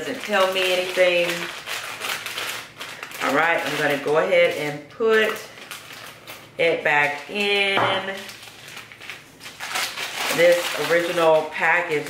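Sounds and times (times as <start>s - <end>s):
plastic package crinkling: 0.0s - 12.0s.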